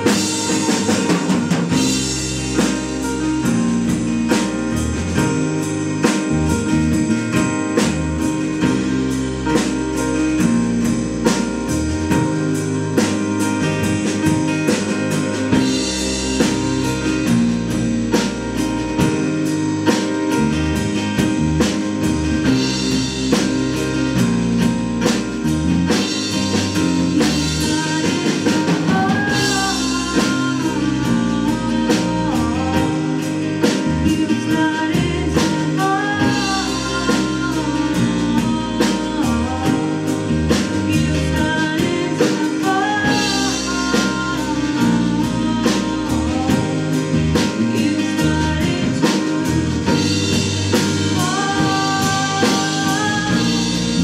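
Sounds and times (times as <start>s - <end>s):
drum and cymbal strikes: 0.0s - 54.0s
electric bass: 0.0s - 54.0s
grand piano: 0.0s - 54.0s.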